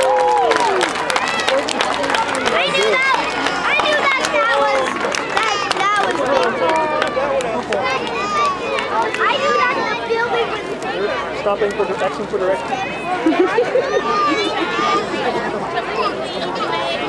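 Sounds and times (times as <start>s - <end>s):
crowd talking and calling out: 0.0s - 17.0s.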